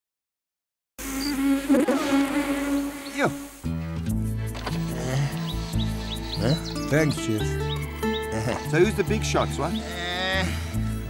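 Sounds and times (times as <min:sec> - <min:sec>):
insect buzzing: 0:01.0 - 0:07.0.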